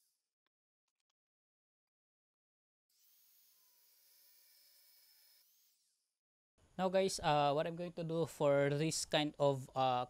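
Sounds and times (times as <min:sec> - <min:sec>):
man talking: 0:06.8 - 0:10.0.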